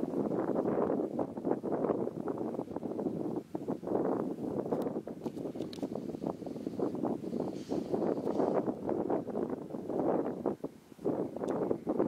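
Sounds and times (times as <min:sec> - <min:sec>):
wind buffeting microphone: 0:00.0 - 0:12.0
faint high clicks: 0:04.7 - 0:05.9.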